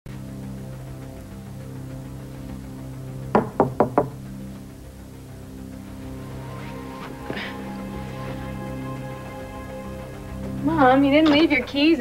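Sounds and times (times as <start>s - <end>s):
soft background music: 0.1s - 12.0s
knocks on wooden door: 3.4s - 4.2s.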